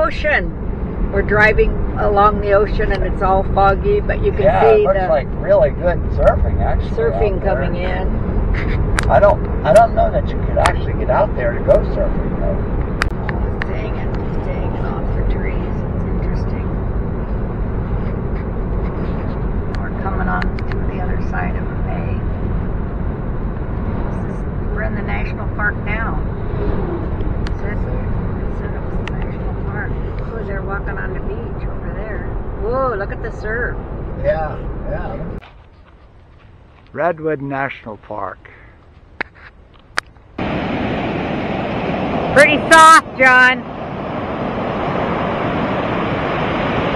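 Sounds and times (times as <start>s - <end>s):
car road noise rumble: 0.0s - 46.9s
ocean surf breaking: 40.4s - 46.9s.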